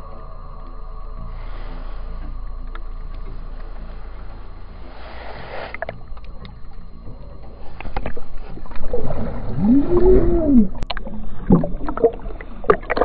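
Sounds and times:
underwater rumble of moving water: 0.0 - 13.0
sharp underwater clicks and knocks: 5.7 - 7.0, 7.7 - 9.0, 10.8 - 13.0.

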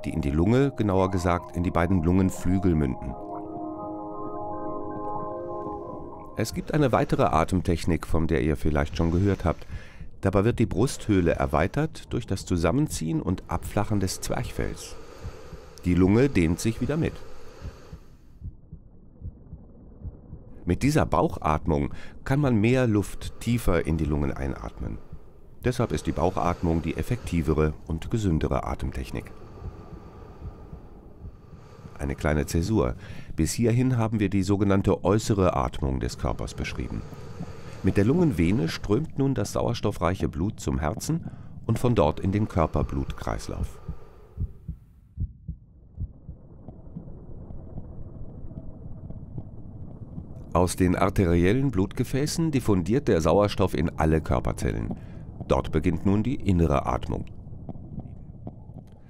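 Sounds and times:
heartbeat thumps: 17.6 - 20.6, 29.6 - 32.0, 43.6 - 50.4.

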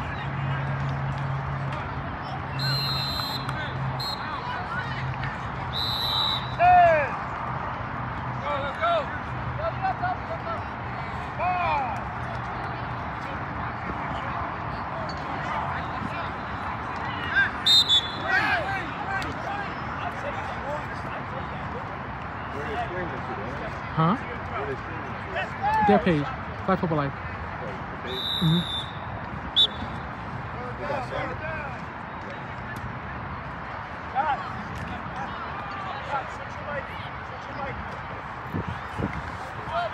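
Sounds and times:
referee's whistle blasts: 2.6 - 4.4, 5.7 - 6.6, 17.6 - 18.3, 28.1 - 30.0
people shouting: 17.1 - 19.0.

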